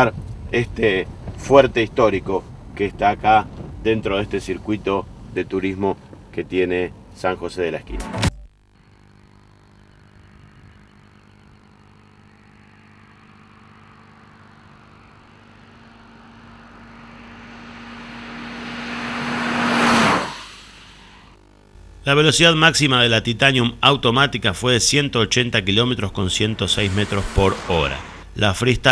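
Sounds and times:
car driving past: 0:11.7 - 0:21.4, 0:26.3 - 0:28.3.

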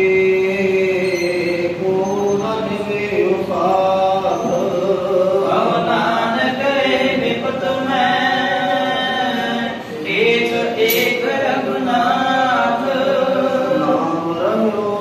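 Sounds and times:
men chanting a hymn through microphones: 0:00.0 - 0:15.0.

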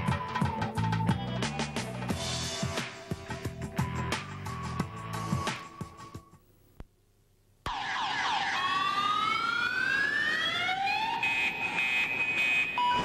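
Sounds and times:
car alarm: 0:07.7 - 0:13.0.

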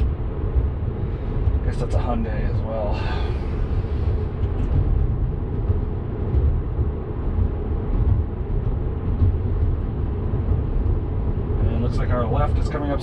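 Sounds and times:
road and tyre rumble in car: 0:00.0 - 0:13.0.

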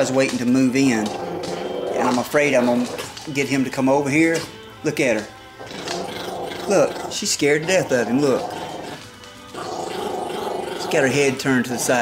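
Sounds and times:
small dog growling: 0:00.8 - 0:03.2, 0:05.6 - 0:12.0.

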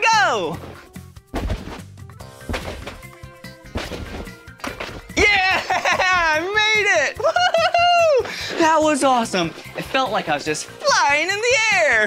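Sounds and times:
light background music: 0:00.0 - 0:12.0
dull thuds on a trampoline: 0:01.3 - 0:05.2.

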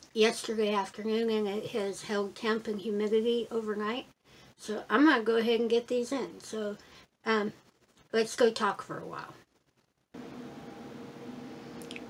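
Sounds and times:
incubator fans humming: 0:10.2 - 0:12.0
faint click: 0:11.8 - 0:12.0.

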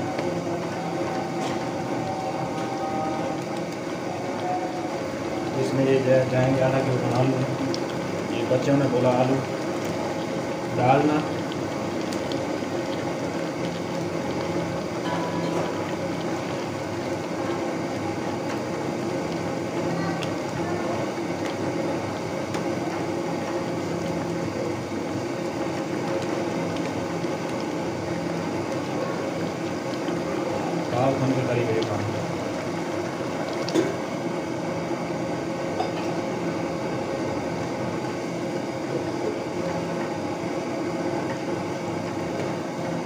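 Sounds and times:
curry simmering in a pan: 0:00.1 - 0:43.0.

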